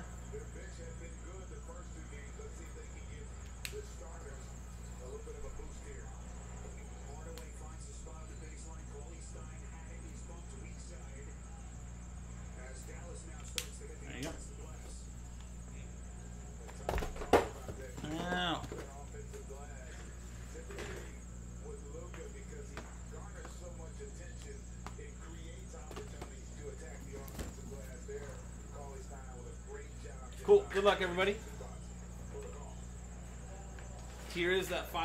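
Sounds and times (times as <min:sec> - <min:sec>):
steady low hum: 0:00.0 - 0:35.0
handling cardboard boxes: 0:25.7 - 0:28.4.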